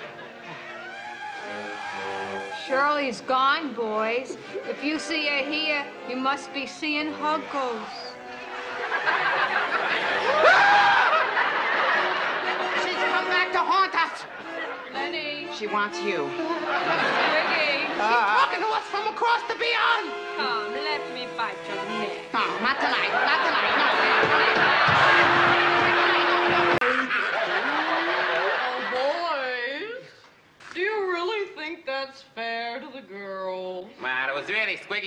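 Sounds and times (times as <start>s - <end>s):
studio audience laughing: 0.0s - 1.0s, 8.2s - 15.4s, 16.3s - 18.8s, 22.4s - 29.5s.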